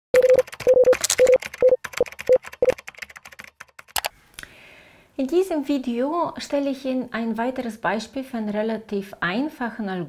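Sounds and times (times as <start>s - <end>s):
electronic typing-like clicks: 0.2s - 4.1s.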